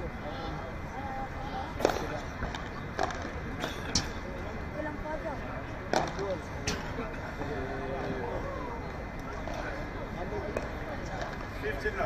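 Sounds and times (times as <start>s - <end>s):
ball struck by rackets: 1.8s - 4.2s, 5.9s - 6.8s.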